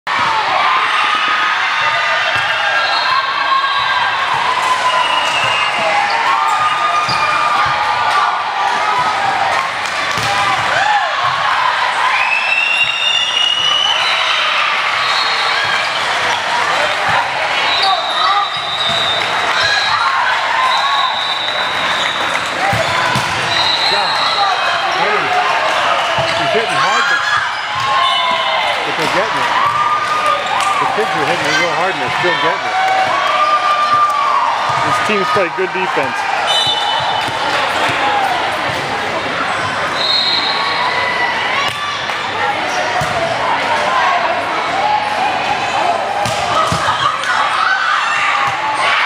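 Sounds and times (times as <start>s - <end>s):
voices calling and chattering: 0.1s - 49.0s.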